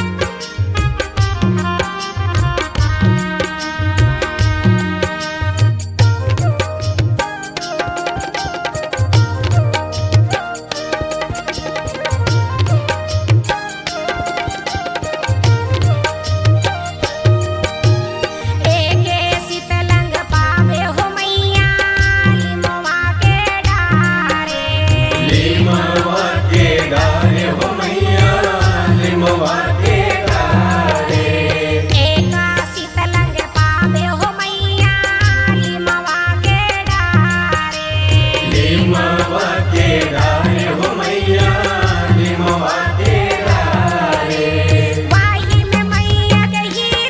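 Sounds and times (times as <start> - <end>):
keyboard organ melody: 0.0 - 20.6
keyboard melody: 0.0 - 47.0
tabla and drum pad beat: 0.0 - 47.0
woman singing: 18.5 - 47.0.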